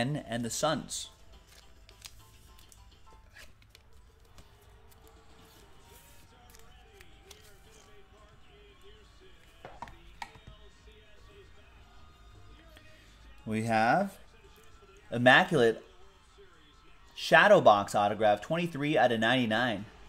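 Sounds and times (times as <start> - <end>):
quiet background music: 0.0 - 20.0
trading cards handled: 1.1 - 8.3, 9.4 - 10.6.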